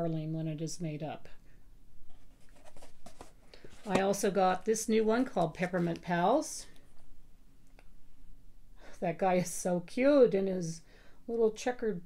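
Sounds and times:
paper and plastic rustling: 0:02.1 - 0:06.4.

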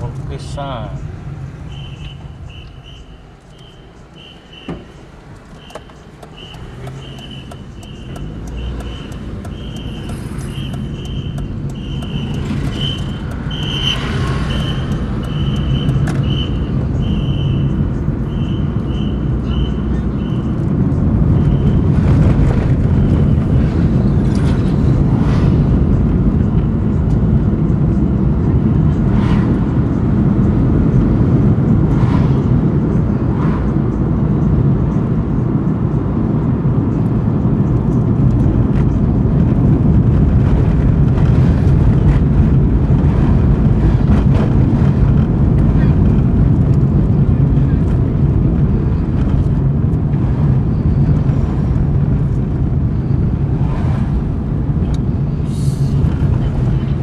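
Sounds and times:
road traffic engine rumble: 0:00.0 - 0:57.0
high chirp: 0:01.6 - 0:05.0.

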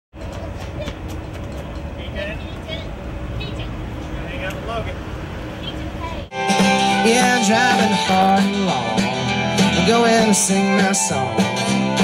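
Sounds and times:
low street rumble: 0:00.1 - 0:12.0.

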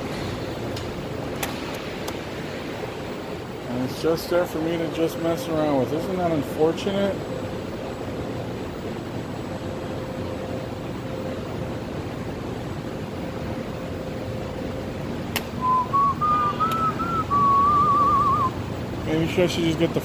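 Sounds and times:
air handling hum: 0:00.0 - 0:20.0
person whistling: 0:15.6 - 0:18.6.

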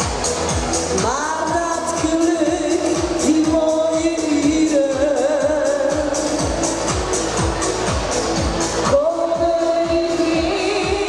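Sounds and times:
backing music with kick drum: 0:00.0 - 0:11.0
woman singing into microphone: 0:01.0 - 0:06.6, 0:08.8 - 0:11.0.

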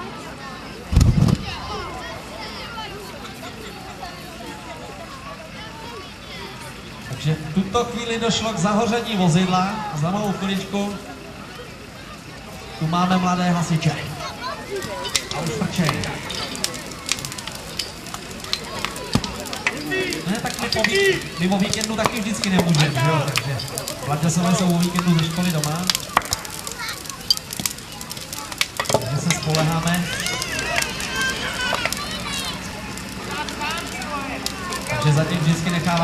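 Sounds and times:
children's voices: 0:00.0 - 0:07.2, 0:08.5 - 0:36.0
burning car crackling and popping: 0:00.0 - 0:36.0
crowd chatter: 0:00.0 - 0:36.0
child's voice: 0:00.3 - 0:06.6, 0:14.1 - 0:15.1, 0:26.0 - 0:28.6, 0:30.0 - 0:32.7.

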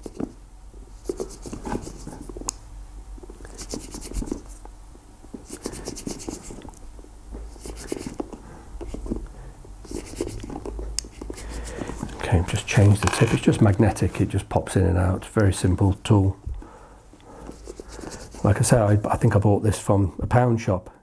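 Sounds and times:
screwdriver scratching in shoe eyelets: 0:01.0 - 0:02.4, 0:03.5 - 0:04.6, 0:05.4 - 0:06.6, 0:07.5 - 0:09.2, 0:09.8 - 0:12.2, 0:17.4 - 0:18.6.

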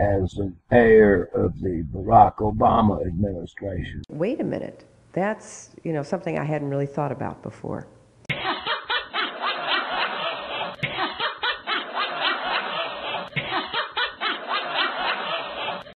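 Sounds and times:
person laughing heartily: 0:08.3 - 0:16.0.

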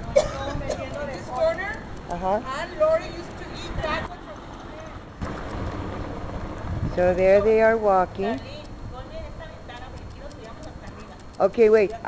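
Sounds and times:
outdoor street background noise: 0:00.0 - 0:12.0
wind buffeting microphone: 0:00.0 - 0:12.0.

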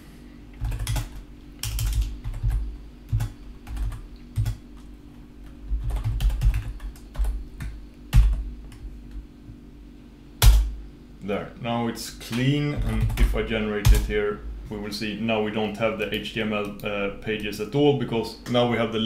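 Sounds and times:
computer keyboard typing: 0:00.6 - 0:08.8, 0:12.8 - 0:14.1.

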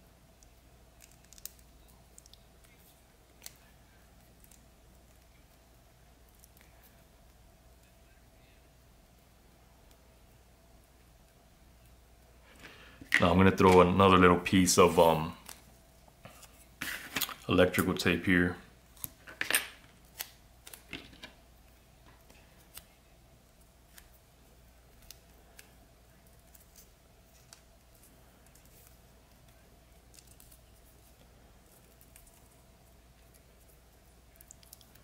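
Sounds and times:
faint steady hum: 0:00.0 - 0:35.0
electrical tape crackling: 0:00.3 - 0:08.6, 0:11.2 - 0:35.0.

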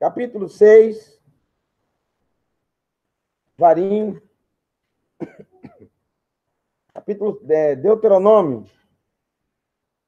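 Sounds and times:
man coughing: 0:05.2 - 0:06.0.

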